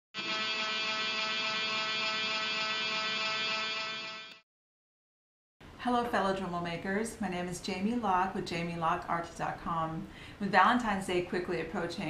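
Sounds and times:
rotary tool motor whine: 0:00.2 - 0:04.4.

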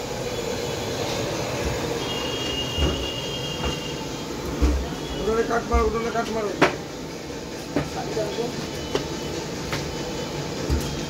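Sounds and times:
steady noisy din: 0:00.0 - 0:11.0.

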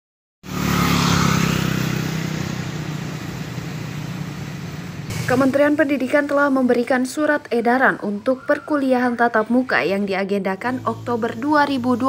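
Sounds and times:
vehicle engine passing by: 0:00.4 - 0:05.5, 0:10.5 - 0:12.0.

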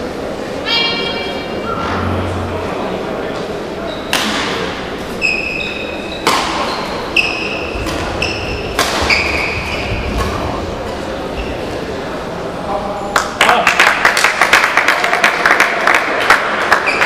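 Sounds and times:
court shoes squeaking on floor: 0:03.8 - 0:10.4, 0:11.3 - 0:11.7
racket striking shuttlecock: 0:06.2 - 0:06.7, 0:08.7 - 0:09.3.

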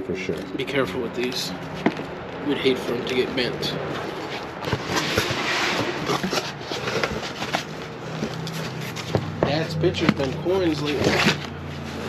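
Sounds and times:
cardboard flaps scraping and rustling: 0:03.9 - 0:12.0.

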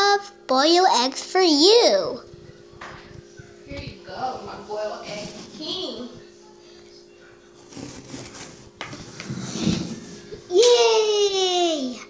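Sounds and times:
toy scraping and rustling on table: 0:05.0 - 0:06.0, 0:07.6 - 0:10.4.

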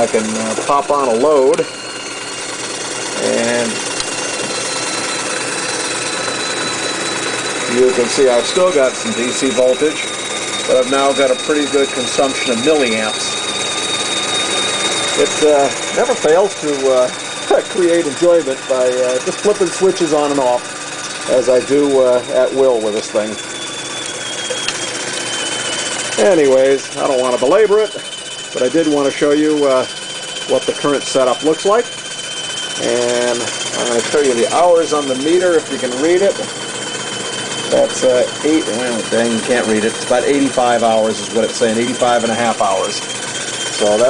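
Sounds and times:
high whine of generators: 0:00.0 - 0:44.0
toy steam engine running: 0:00.0 - 0:44.0.

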